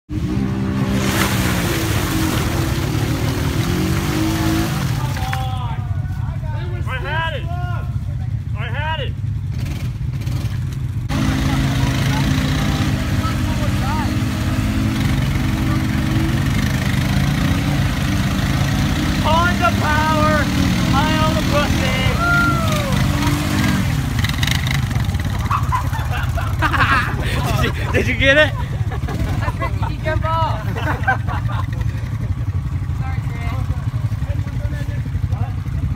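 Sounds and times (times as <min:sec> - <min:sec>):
atv engines revving: 0:00.1 - 0:35.9.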